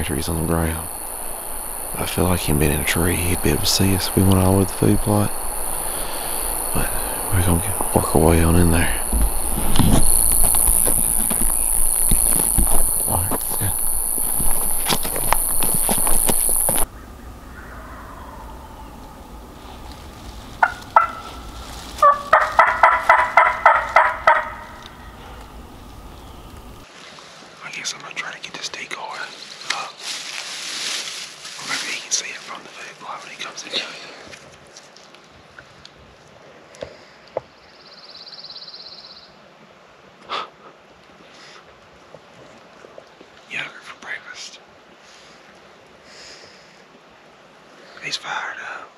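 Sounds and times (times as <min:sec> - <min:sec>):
footsteps: 0:00.0 - 0:16.9, 0:19.5 - 0:27.3
night insects trilling: 0:00.0 - 0:26.9
wild turkey gobbling: 0:00.1 - 0:26.8.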